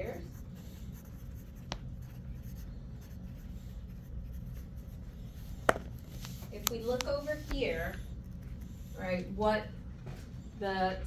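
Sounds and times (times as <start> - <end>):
pen scratching on paper: 0.0 - 9.2
steady low hum: 0.0 - 11.0.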